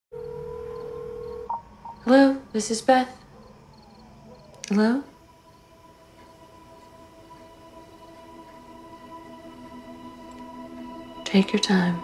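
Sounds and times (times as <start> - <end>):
electronic telephone tone: 0.2 - 1.7.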